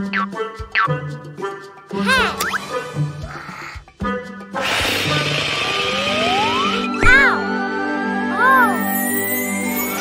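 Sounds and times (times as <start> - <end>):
children's background music: 0.0 - 10.0
hissing rush of air: 4.6 - 5.3
rising whistle: 6.0 - 7.0.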